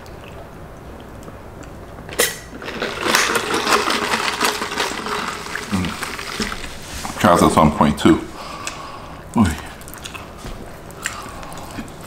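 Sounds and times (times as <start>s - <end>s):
close chewing mouth clicks: 9.8s - 11.9s.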